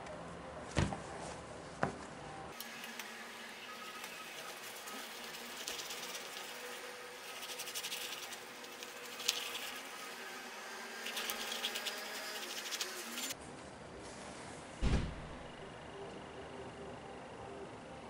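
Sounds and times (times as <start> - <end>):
squeeze bottle buzzy crackle: 2.6 - 13.4.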